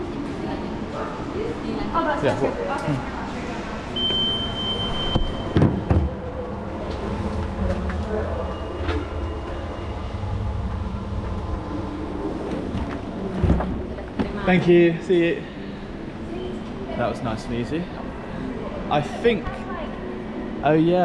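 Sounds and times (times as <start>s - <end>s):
low machine hum: 0.0s - 21.0s
high electronic beep: 4.0s - 5.6s
muffled voices: 6.2s - 21.0s.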